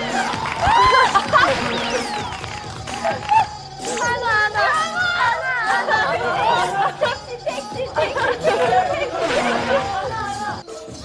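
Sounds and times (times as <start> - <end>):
background music: 0.0 - 11.0
people laughing and chattering: 0.0 - 11.0.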